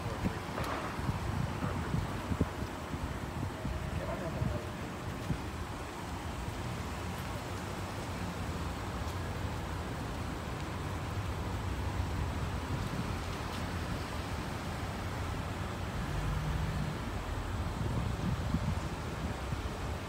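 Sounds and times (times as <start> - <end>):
wind noise on microphone: 0.0 - 20.0.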